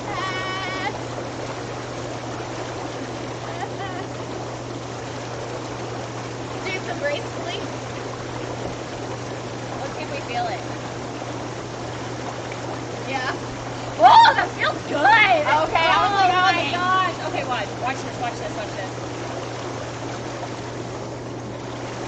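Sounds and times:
water churning and fizzing: 0.0s - 22.0s.

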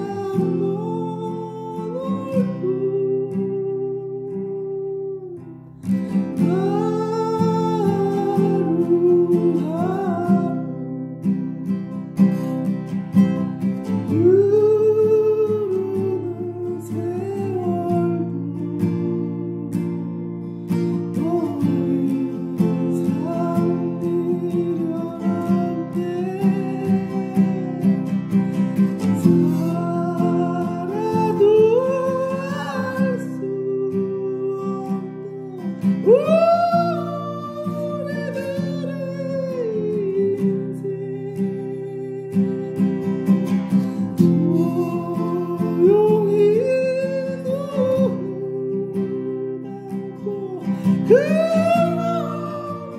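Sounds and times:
person singing: 0.0s - 11.2s, 12.2s - 52.9s
acoustic guitar: 0.0s - 52.9s.

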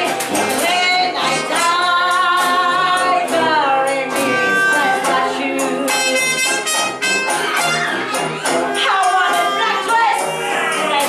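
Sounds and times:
woman singing: 0.0s - 6.4s, 8.8s - 11.0s
traditional jazz band playing: 0.0s - 11.0s.

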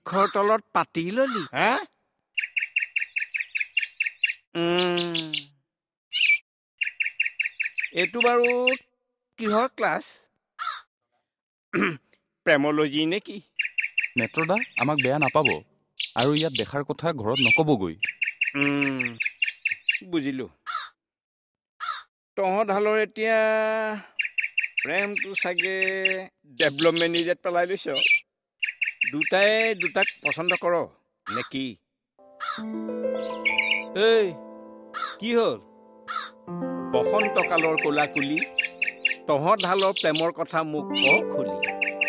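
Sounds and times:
bird chirping: 2.3s - 9.7s, 13.4s - 20.9s, 24.1s - 31.6s, 32.3s - 42.0s.

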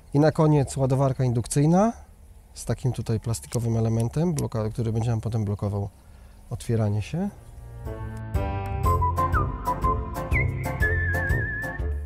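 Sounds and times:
whistled melody: 8.7s - 12.0s.

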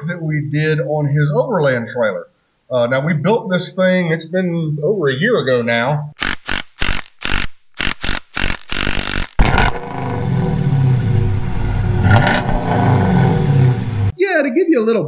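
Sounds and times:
sharp hits: 6.2s - 14.1s
engine revving: 6.9s - 14.1s.

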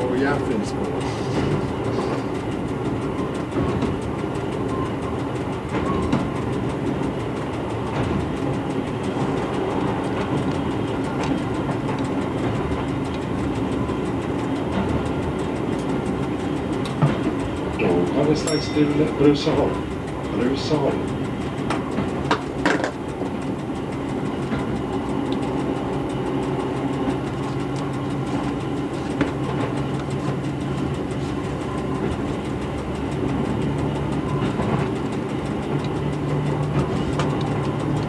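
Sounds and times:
diesel engine running: 0.0s - 38.0s
wheel and rail noise: 0.0s - 38.0s.

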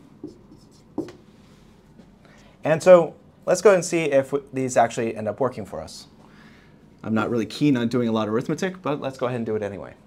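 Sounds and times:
marker writing on whiteboard: 0.0s - 1.4s.

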